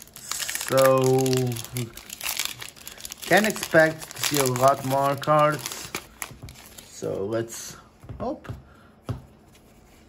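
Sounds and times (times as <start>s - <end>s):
foil wrapper crinkling: 0.0s - 6.9s.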